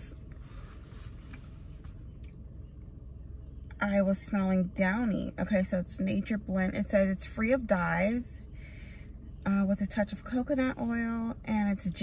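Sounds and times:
low steady rumble: 0:00.0 - 0:12.0.

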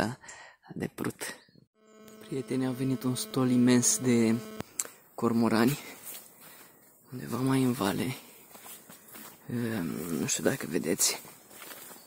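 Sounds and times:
man speaking: 0:02.2 - 0:04.6, 0:07.1 - 0:08.2.

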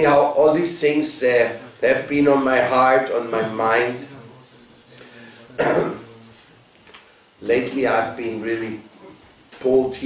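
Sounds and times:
man coughing: 0:05.6 - 0:06.1.

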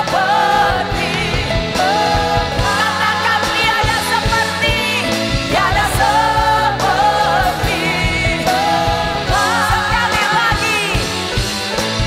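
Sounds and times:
women singing into microphones: 0:00.0 - 0:11.3
live band with drums: 0:00.0 - 0:12.0.

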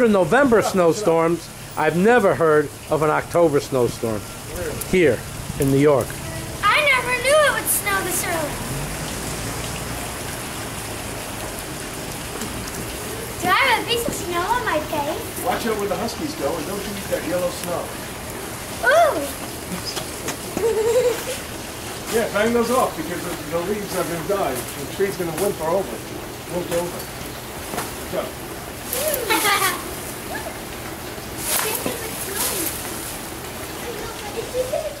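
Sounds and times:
faint steady hiss: 0:00.0 - 0:35.0.

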